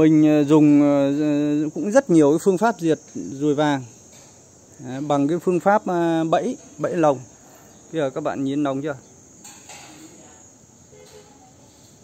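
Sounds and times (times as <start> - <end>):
insects droning: 0.0 - 12.0.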